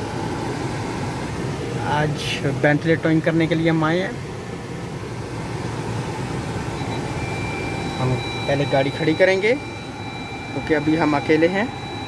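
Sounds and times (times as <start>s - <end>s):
faint high steady tone: 6.6s - 12.0s.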